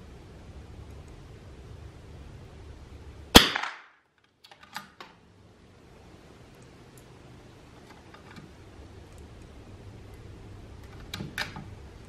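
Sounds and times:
rifle shot: 0:03.3 - 0:04.0.

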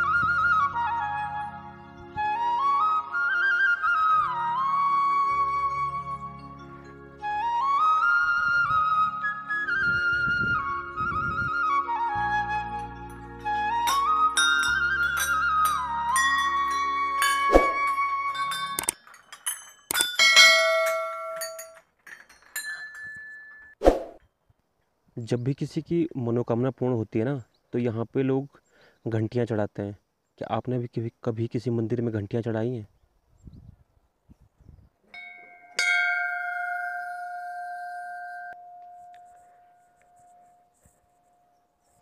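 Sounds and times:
brass bells struck by hand: 0:13.8 - 0:21.8, 0:35.2 - 0:37.0.

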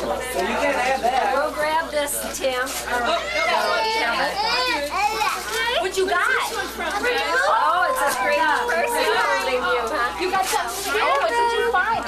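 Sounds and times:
children chattering: 0:00.0 - 0:12.0.

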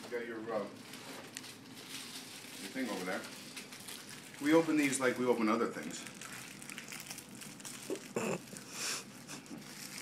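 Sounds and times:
man grunting: 0:07.9 - 0:08.4.

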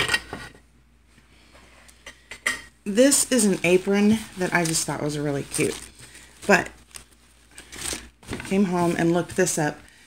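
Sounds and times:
woman's voice: 0:02.9 - 0:06.8, 0:08.4 - 0:09.9.

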